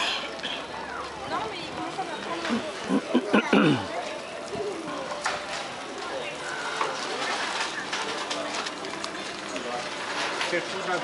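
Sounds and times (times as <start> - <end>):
indistinct voices chattering: 0.0 - 11.0
steady outdoor hum: 0.0 - 11.0.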